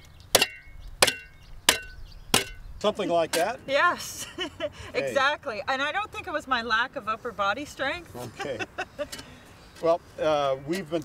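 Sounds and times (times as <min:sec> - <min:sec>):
shovel striking hard soil: 0:00.0 - 0:02.7.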